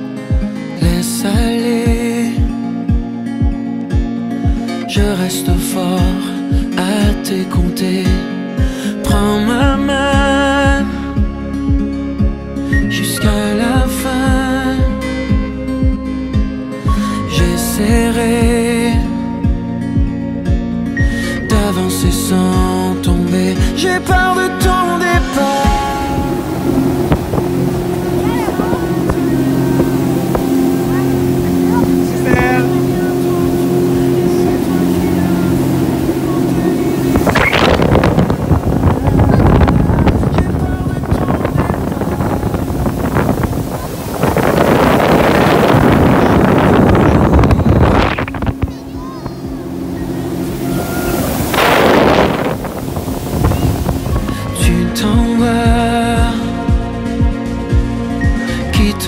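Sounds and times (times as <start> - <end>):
motorboat engine drone: 7.6 - 59.0
wind buffeting microphone: 25.6 - 55.3.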